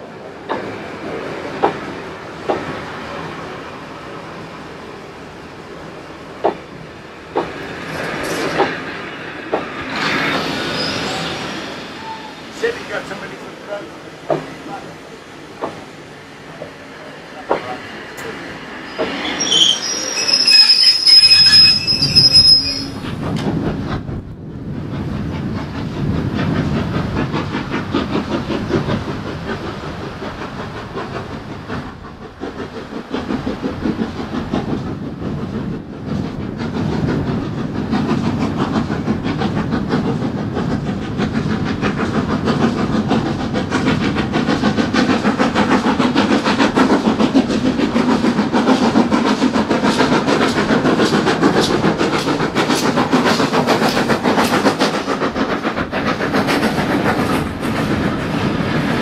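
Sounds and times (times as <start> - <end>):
train wheels on rails: 0.0 - 59.0
steam locomotive exhaust chuffing: 0.4 - 59.0
high shrill train tones: 10.4 - 12.6, 18.7 - 23.1.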